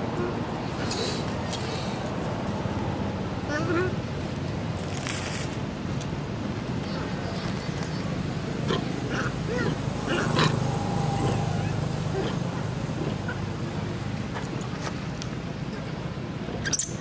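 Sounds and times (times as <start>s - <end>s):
low background hum: 5.9s - 16.6s.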